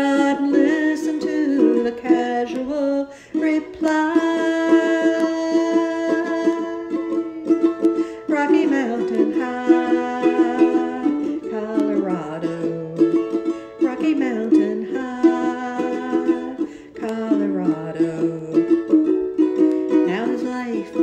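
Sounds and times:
ukulele strumming: 0:00.0 - 0:21.0.

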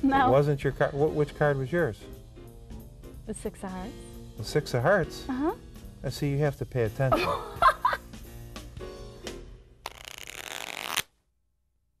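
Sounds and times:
playing cards riffling: 0:09.8 - 0:11.1.

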